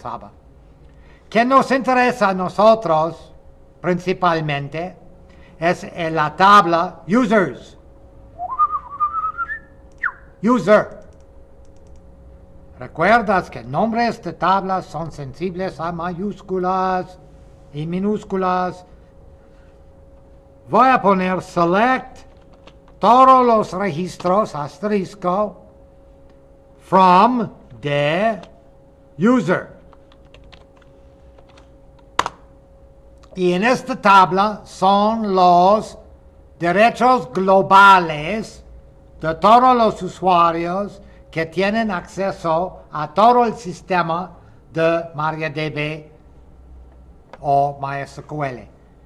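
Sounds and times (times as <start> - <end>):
faint steady hum: 0.0 - 49.0
person whistling: 8.4 - 10.4
keyboard typing: 10.9 - 12.1, 22.2 - 23.0, 29.8 - 32.4.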